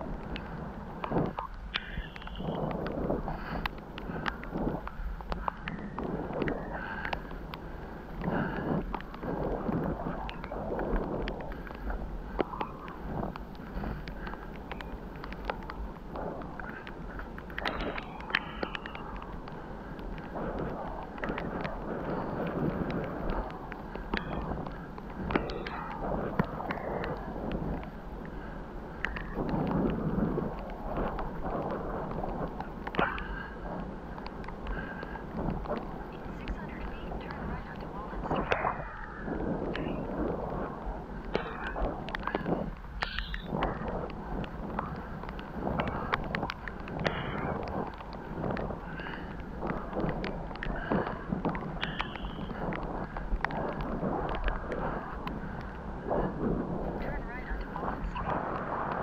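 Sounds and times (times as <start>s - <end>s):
wind noise on microphone: 0.0s - 59.0s.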